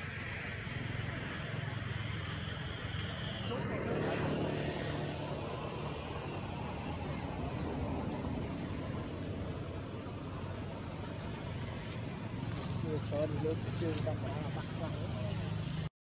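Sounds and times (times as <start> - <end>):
distant engine drone: 0.0 - 15.9.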